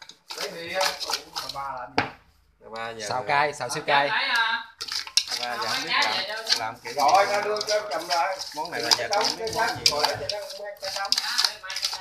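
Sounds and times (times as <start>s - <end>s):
chopsticks knocking on metal pot: 4.9s - 12.0s.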